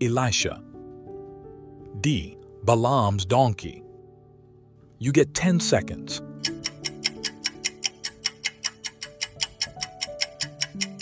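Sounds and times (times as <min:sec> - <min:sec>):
soft background music: 0:00.0 - 0:11.0
timer ticking: 0:06.4 - 0:11.0.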